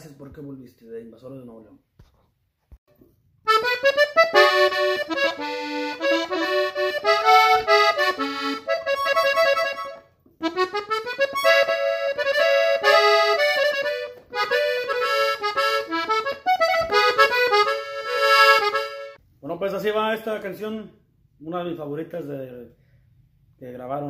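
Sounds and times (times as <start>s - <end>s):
button accordion melody: 3.5s - 19.2s.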